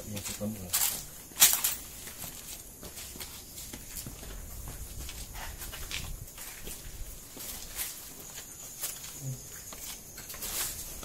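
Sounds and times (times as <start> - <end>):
footsteps on steps with dry leaves: 0.0 - 11.0.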